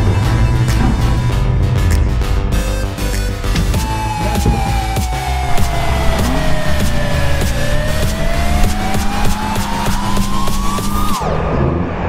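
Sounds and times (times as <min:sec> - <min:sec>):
music with steady beat: 0:00.0 - 0:11.2
car engine revving: 0:00.0 - 0:12.0.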